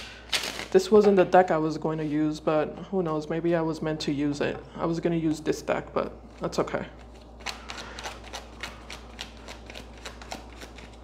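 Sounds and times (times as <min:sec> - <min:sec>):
cards being shuffled: 0:00.0 - 0:01.1, 0:06.4 - 0:11.0.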